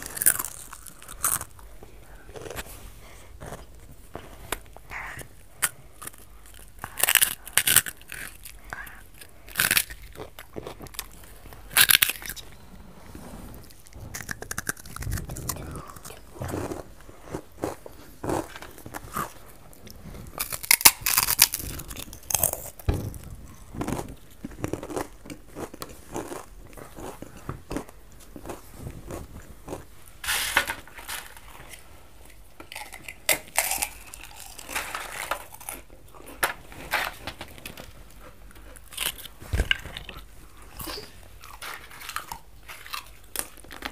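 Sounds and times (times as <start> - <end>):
crunching crisp snacks: 0.0 - 2.6, 5.6 - 12.5, 13.7 - 22.9, 23.5 - 36.4, 38.2 - 43.9
people chewing: 0.0 - 43.9.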